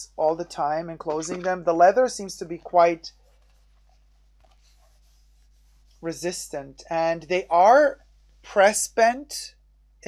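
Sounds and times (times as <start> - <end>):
pouch rubbing: 3.1 - 6.0.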